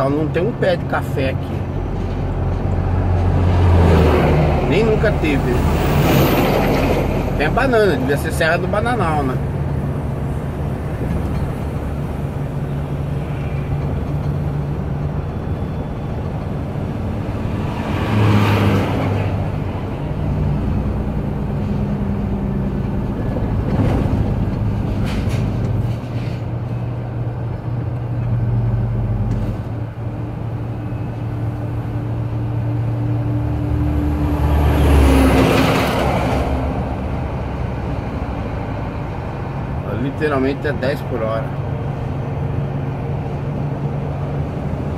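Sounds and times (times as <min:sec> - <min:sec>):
passing vehicles rushing: 0:00.0 - 0:44.9
truck engine humming: 0:00.0 - 0:44.9.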